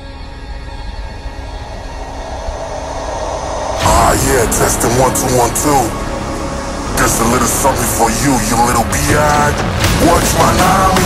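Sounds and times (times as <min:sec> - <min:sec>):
droning electronic swell: 0:00.0 - 0:11.0
vocal sample: 0:03.8 - 0:11.0.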